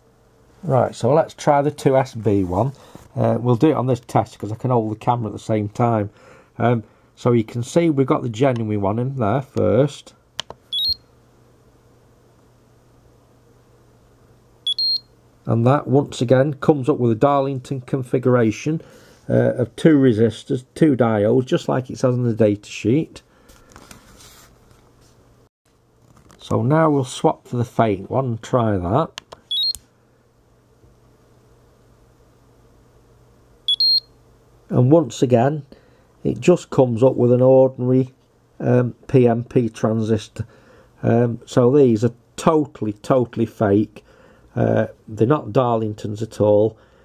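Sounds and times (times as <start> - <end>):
faint steady hum: 0.0 - 47.0
two-note electronic beep: 10.8 - 11.0.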